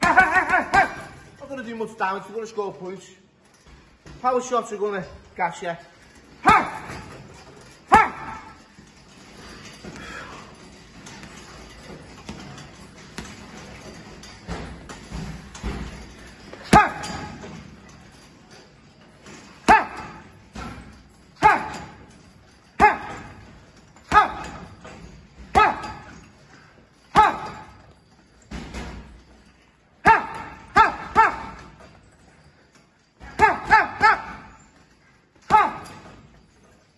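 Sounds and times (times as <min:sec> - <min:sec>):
punches hitting a heavy bag: 0:00.0 - 0:01.2, 0:06.4 - 0:08.6, 0:11.0 - 0:17.7, 0:19.6 - 0:22.1, 0:22.8 - 0:26.3, 0:27.1 - 0:27.9, 0:30.0 - 0:31.8, 0:33.2 - 0:34.6, 0:35.5 - 0:36.2
punches on punch bag: 0:22.8 - 0:23.4, 0:25.4 - 0:26.1.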